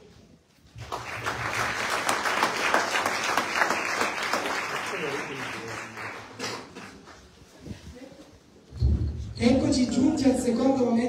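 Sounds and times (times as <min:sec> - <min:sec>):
audience applauding: 0:00.8 - 0:07.2.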